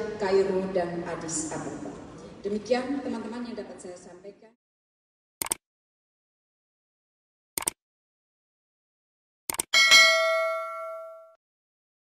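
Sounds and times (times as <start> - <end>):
bell-like notification ding: 9.8 - 11.4.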